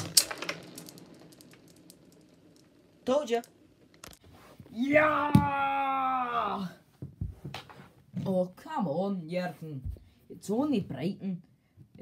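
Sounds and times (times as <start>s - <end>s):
marbles clacking together: 0.0s - 4.2s
marbles rolling on hard floor: 0.0s - 4.2s.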